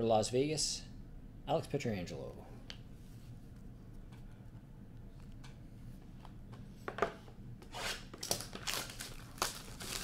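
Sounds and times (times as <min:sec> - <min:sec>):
packaging tearing and crinkling: 0:07.9 - 0:10.0.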